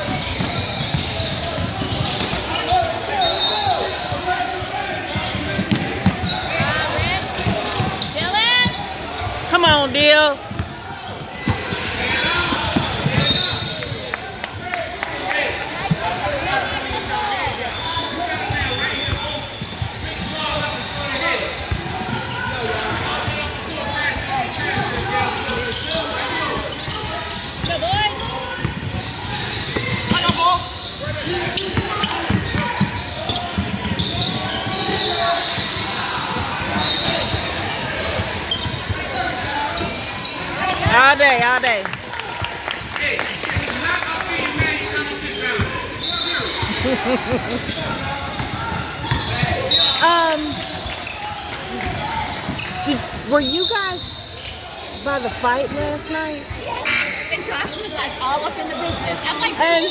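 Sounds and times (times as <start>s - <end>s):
voices echoing in gym: 0.0s - 59.9s.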